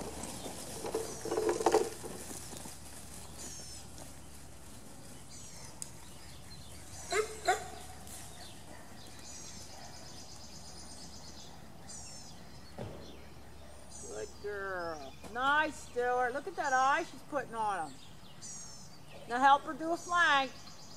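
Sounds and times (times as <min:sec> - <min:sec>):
faint birdsong: 0:00.0 - 0:20.9
outdoor background: 0:00.0 - 0:20.9
dog barking: 0:07.1 - 0:07.8.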